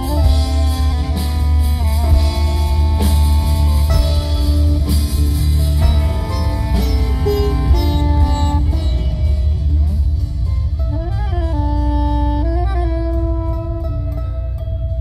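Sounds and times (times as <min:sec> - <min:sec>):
band playing slow passage: 0:00.0 - 0:15.0
deep bass: 0:00.0 - 0:15.0
melody with long bending notes: 0:00.0 - 0:15.0.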